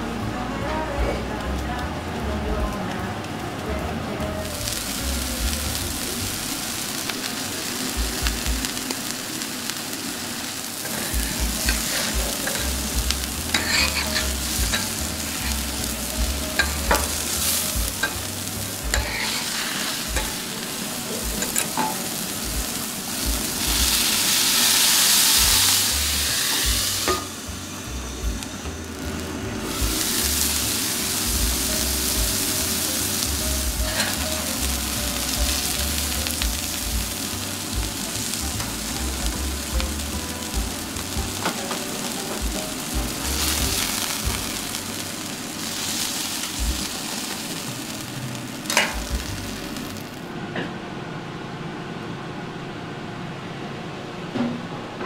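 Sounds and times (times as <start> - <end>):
burger patties sizzling on a griddle: 0.0 - 50.3.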